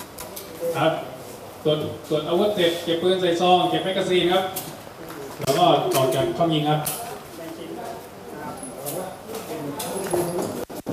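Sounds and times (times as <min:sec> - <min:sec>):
murmur of people talking: 0:00.0 - 0:10.9.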